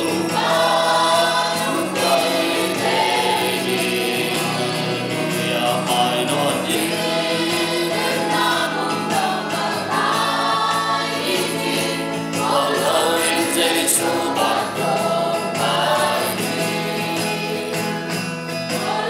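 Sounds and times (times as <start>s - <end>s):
choir singing a christian song: 0.0s - 19.0s.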